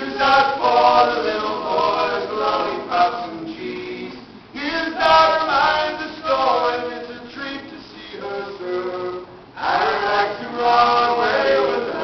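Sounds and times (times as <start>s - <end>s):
voices singing in harmony: 0.0s - 12.0s.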